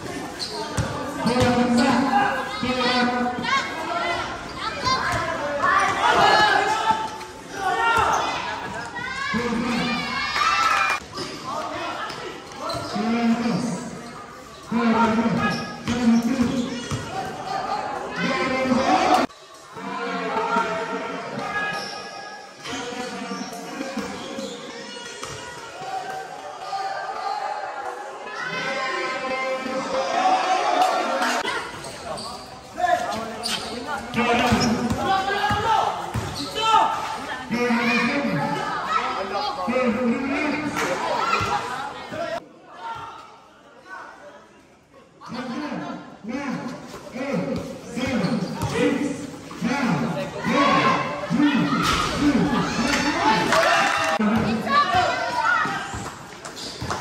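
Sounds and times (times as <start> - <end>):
people shouting and calling: 1.0 - 13.8, 48.0 - 56.1
basketball bouncing on court: 15.4 - 17.2, 34.0 - 36.5, 47.6 - 48.8, 56.8 - 57.0.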